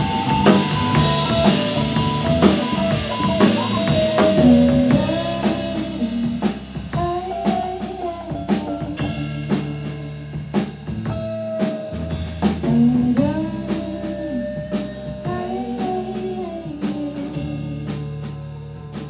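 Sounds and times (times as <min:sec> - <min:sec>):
drum kit beat: 0:00.0 - 0:19.0
live rock band playing: 0:00.0 - 0:19.0.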